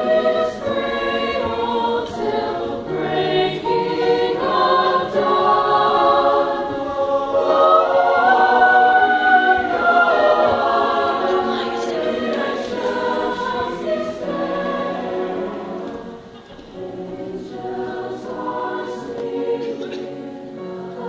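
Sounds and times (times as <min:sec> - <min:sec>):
choir singing held chords: 0:00.0 - 0:21.0.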